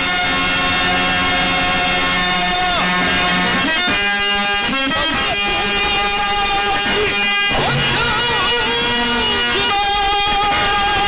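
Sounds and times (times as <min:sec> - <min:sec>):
man singing a long note: 0:00.0 - 0:11.0.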